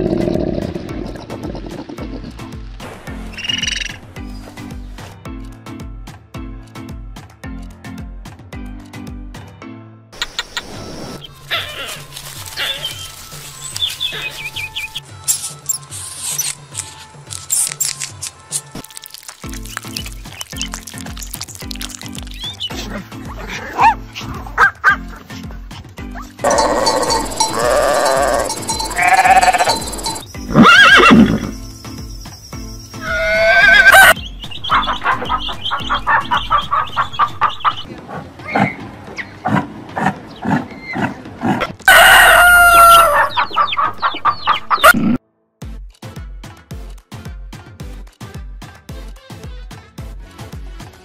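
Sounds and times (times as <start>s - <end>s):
farm animal calls: 11.4s - 13.2s, 26.4s - 31.6s, 33.0s - 45.2s
music with steady beat: 45.6s - 51.0s.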